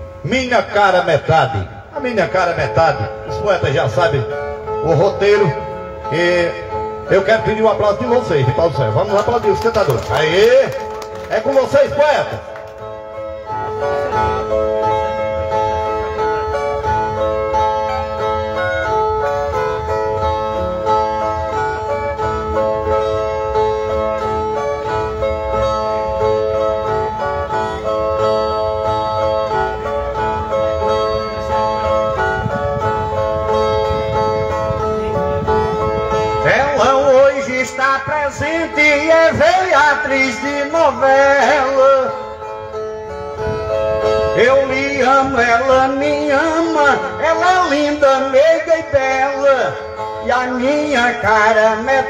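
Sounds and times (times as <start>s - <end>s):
plucked folk guitars playing: 0.0s - 52.0s.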